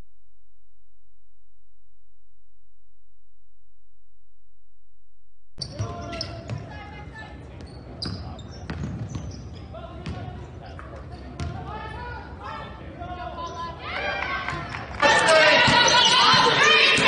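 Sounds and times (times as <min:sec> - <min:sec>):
basketball bouncing on hardwood: 0:08.7 - 0:09.3, 0:11.4 - 0:11.6
indistinct shouts and chatter: 0:12.5 - 0:17.0.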